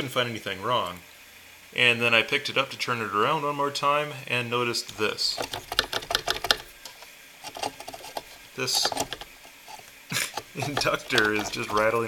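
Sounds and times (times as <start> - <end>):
loose choke rattling and clicking: 4.9 - 12.0.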